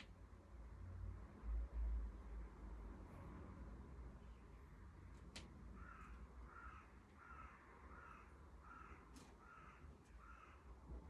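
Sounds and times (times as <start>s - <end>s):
faint crow cawing: 5.6s - 11.0s.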